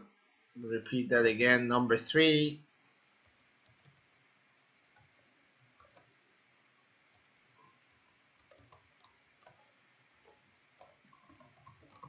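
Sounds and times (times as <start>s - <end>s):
computer keyboard keystrokes: 5.8s - 6.1s, 8.3s - 9.6s, 10.8s - 12.0s.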